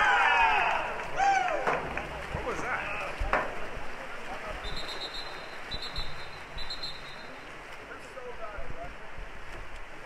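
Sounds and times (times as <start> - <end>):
swimmers splashing: 0.0 - 10.0.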